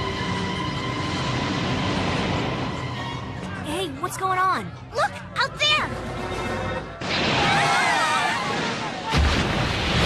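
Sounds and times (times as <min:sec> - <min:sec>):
deep booming splash: 0:08.5 - 0:10.0.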